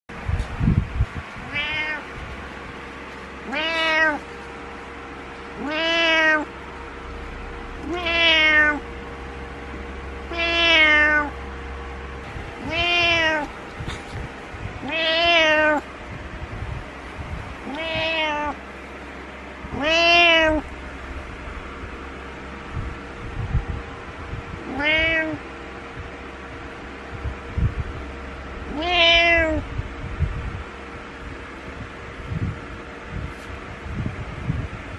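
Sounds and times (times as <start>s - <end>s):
cat meowing: 1.4s - 2.1s, 3.4s - 4.3s, 5.6s - 6.5s, 7.8s - 8.8s, 10.3s - 11.4s, 12.6s - 14.0s, 14.8s - 15.9s, 17.6s - 18.6s, 19.7s - 20.7s, 24.6s - 25.4s, 28.6s - 29.7s.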